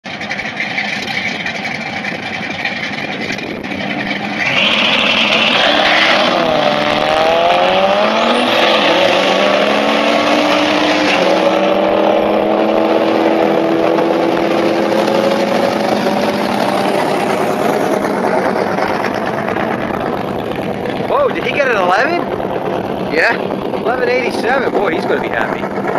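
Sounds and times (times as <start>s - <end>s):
drag racing cars accelerating: 0.0s - 25.9s.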